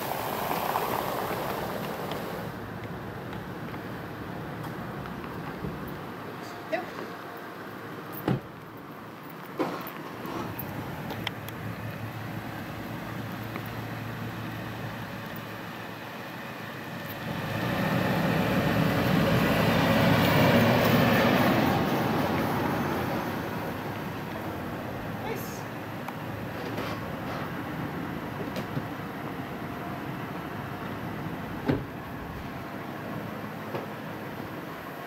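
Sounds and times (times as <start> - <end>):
vehicle passing by: 0.0 - 2.7, 10.1 - 25.8.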